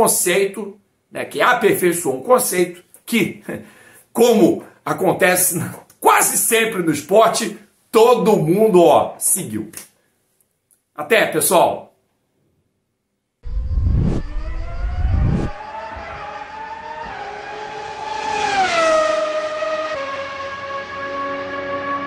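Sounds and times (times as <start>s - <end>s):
race car engine passing by: 14.0s - 22.0s.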